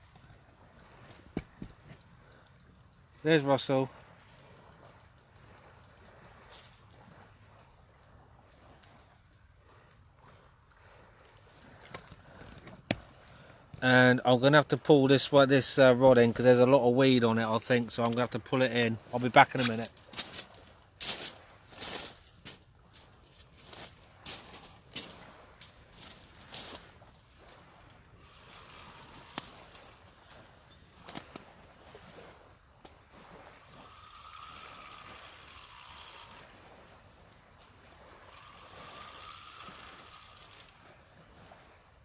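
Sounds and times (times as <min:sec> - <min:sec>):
fishing rod clicks and knocks: 0:00.0 - 0:03.2, 0:03.9 - 0:10.3, 0:11.2 - 0:13.8, 0:17.9 - 0:18.4, 0:19.2 - 0:41.6
fishing reel whirring: 0:00.0 - 0:13.4, 0:18.7 - 0:41.7.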